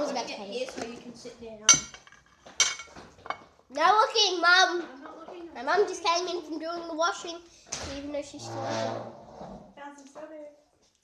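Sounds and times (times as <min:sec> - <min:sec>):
metal knife clinking against dish: 0:01.7 - 0:02.9.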